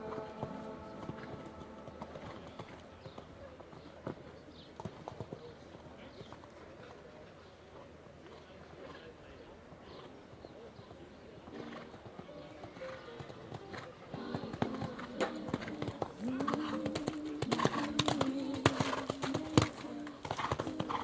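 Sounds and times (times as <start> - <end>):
horse hoofbeats: 0.0 - 5.5, 11.5 - 21.0.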